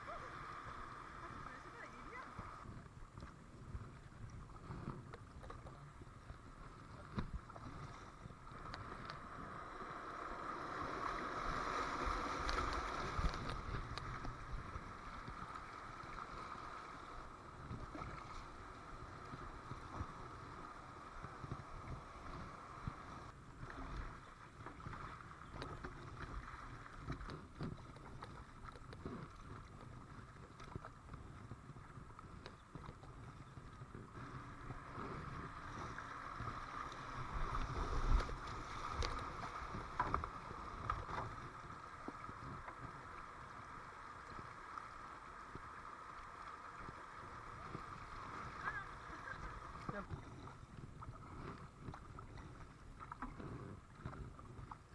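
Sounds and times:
paddle dipping into water: 23.0s - 54.9s.

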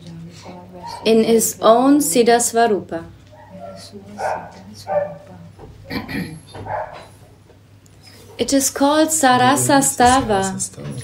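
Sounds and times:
dog barking: 0.8s - 1.3s, 3.3s - 5.4s, 6.6s - 7.2s.

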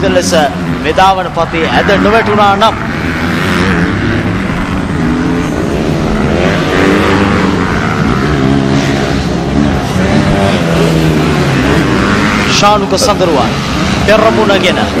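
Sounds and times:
racing motorcycle engines revving: 0.0s - 15.0s.

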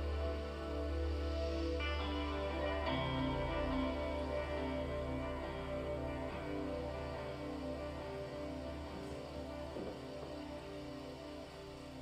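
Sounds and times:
low drone: 0.0s - 12.0s
ringing plucked guitar notes: 1.7s - 10.6s.

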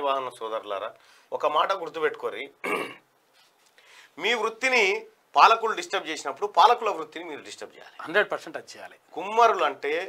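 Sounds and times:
man talking: 0.0s - 2.7s, 4.2s - 10.0s.

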